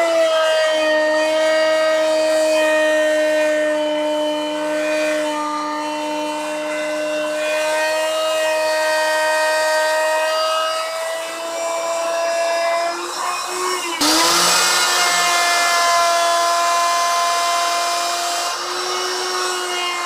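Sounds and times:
electric router whining: 0.0s - 20.0s.

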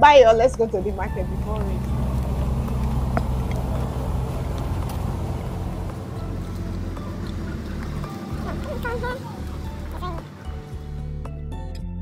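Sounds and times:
vehicle engine running: 0.0s - 11.6s.

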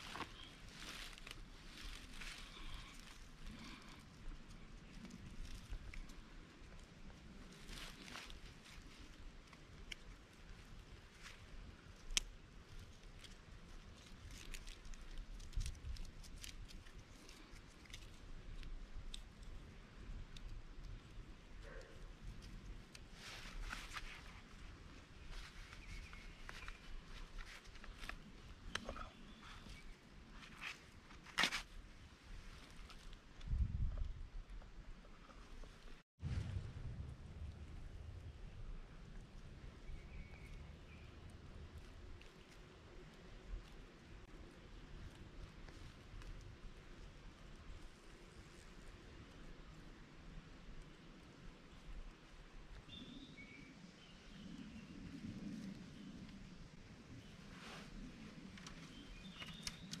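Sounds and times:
small clicks and rustles: 0.0s - 31.8s, 57.1s - 60.0s
low rumble: 36.2s - 42.2s.

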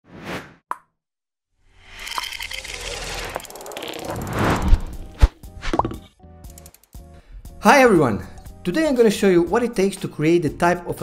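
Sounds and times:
noisy riser: 2.7s - 5.7s
short whoosh: 4.1s - 5.4s.

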